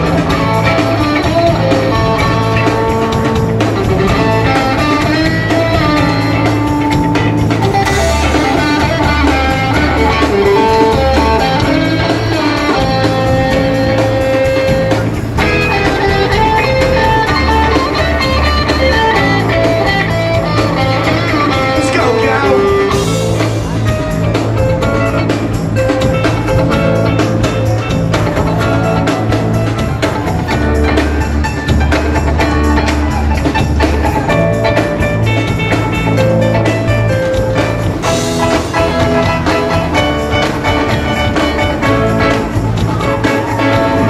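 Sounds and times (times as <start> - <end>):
bass guitar: 0.0 - 44.0
drums: 0.0 - 44.0
electric guitar: 0.0 - 44.0.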